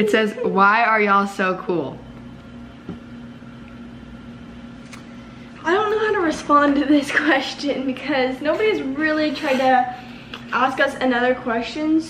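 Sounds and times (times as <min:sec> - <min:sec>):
appliance humming: 0:00.0 - 0:12.0.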